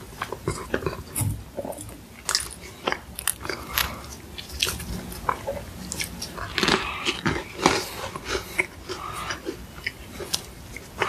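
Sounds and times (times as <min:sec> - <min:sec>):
meringue crunching: 0:00.2 - 0:11.0.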